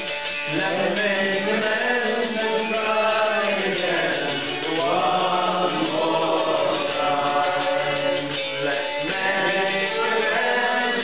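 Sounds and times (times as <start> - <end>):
crowd singing together: 0.0 - 11.0
lead singer singing: 0.4 - 11.0.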